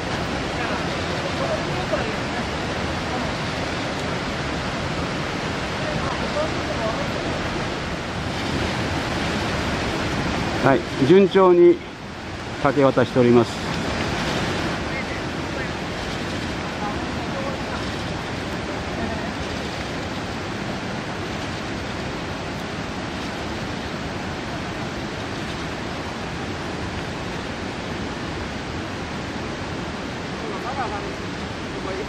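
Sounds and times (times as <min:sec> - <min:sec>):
river water rushing: 0:00.0 - 0:32.0.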